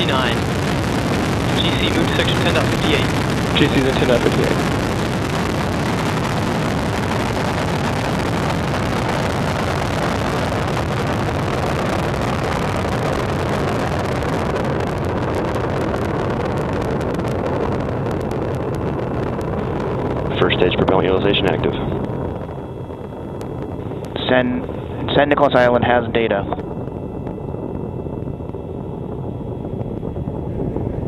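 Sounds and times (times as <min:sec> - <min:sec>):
rocket engines rumbling: 0:00.0 - 0:31.0.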